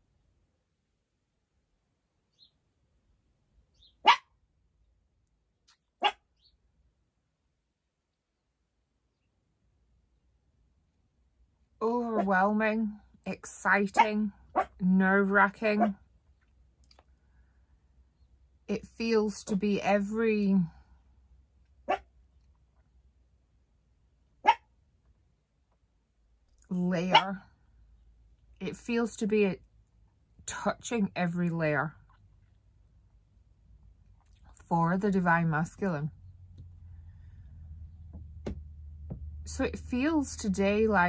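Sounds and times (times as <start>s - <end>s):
small dog barking: 4.0s - 4.3s, 6.0s - 6.2s, 14.0s - 14.8s, 21.9s - 22.1s, 24.4s - 24.7s, 27.1s - 27.4s
small dog yapping: 4.0s - 4.3s, 6.0s - 6.2s, 21.9s - 22.1s, 24.4s - 24.6s.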